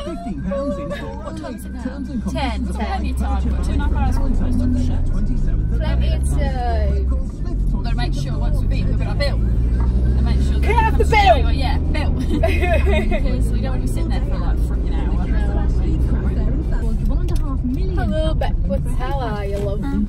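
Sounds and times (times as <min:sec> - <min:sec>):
music playing: 0:00.0 - 0:16.8
car engine and road rumble: 0:00.0 - 0:20.0.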